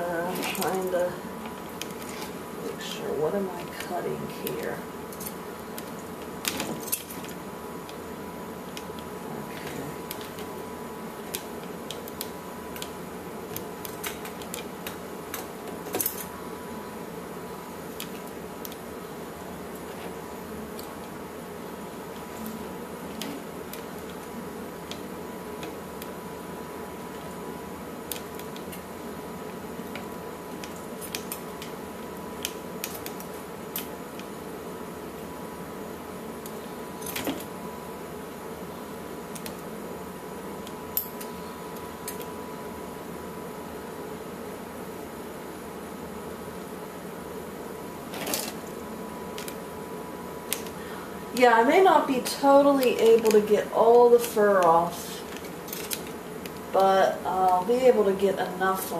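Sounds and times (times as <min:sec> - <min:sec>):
steady background hum: 0:00.0 - 0:58.9.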